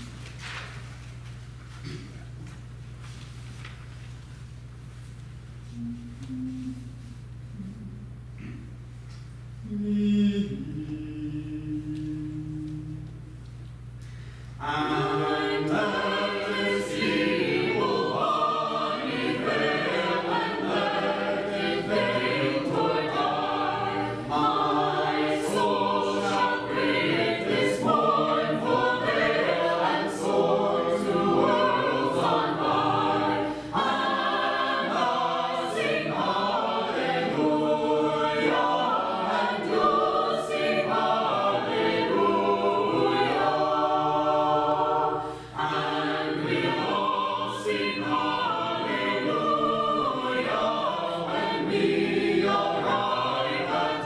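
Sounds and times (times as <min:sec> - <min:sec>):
choir singing a cappella: 0:09.6 - 0:13.4, 0:14.6 - 0:54.0.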